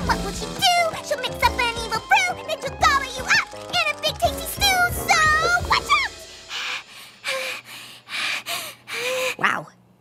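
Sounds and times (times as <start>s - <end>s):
cartoon woman gasping breaths: 6.5s - 9.4s.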